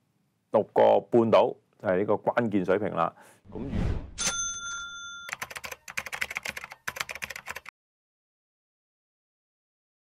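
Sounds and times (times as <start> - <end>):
bright bell-like ding: 4.2 - 5.3
keyboard typing clicks: 5.3 - 7.7.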